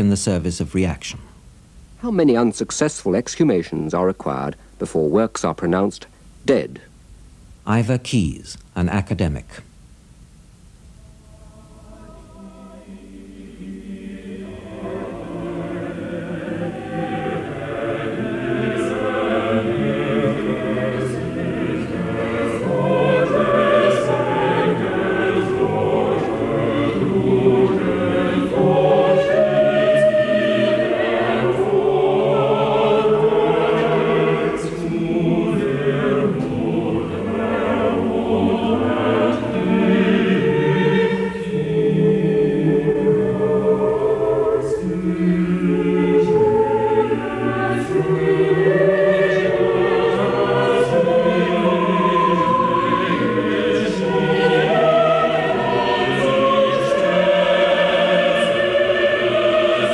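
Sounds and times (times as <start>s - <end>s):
choir singing chords: 10.9s - 59.9s.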